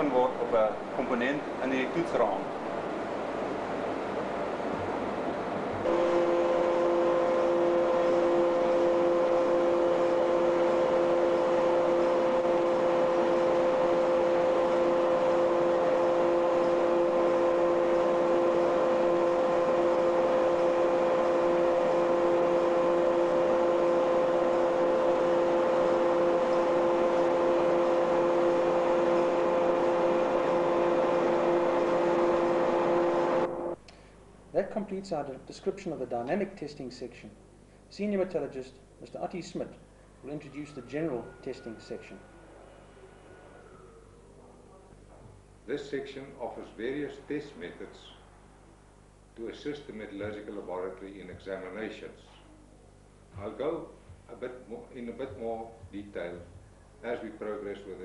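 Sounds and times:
two-note hum: 0:05.9 - 0:33.8.

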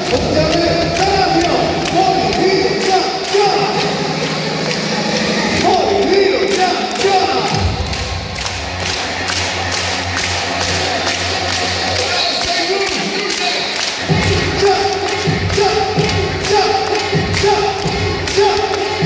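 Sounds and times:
cheer music with heavy bass: 0:00.0 - 0:19.0
crowd singing and chanting: 0:13.0 - 0:19.0.

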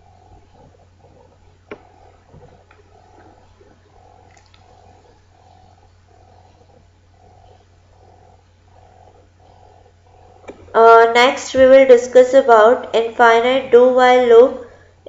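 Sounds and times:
faint pulsing low hum: 0:00.0 - 0:15.0.

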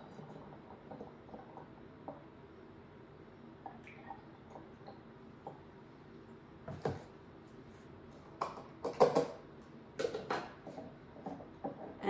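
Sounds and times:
kitchenware knocks and clinks: 0:08.4 - 0:09.4.

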